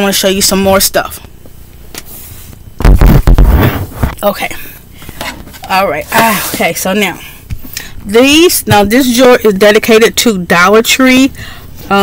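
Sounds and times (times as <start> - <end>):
microphone handling rumble: 2.6 - 4.2.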